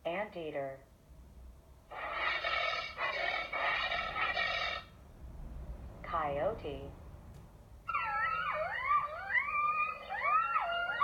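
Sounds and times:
breathy hissing animal call: 1.9 - 4.9.

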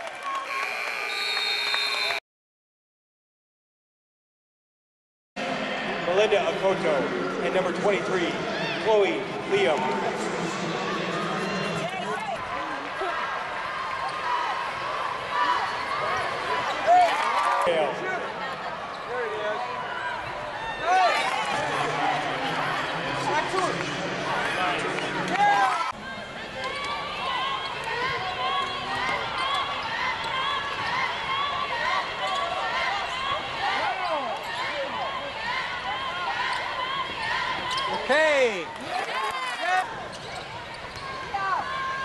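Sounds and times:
spectators talking: 5.4 - 42.0
sneakers squeaking on court: 40.0 - 41.3.

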